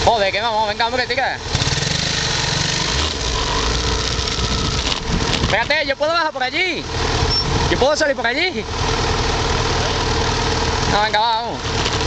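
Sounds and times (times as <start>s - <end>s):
motorcycle engine running at low revs: 0.0s - 12.0s.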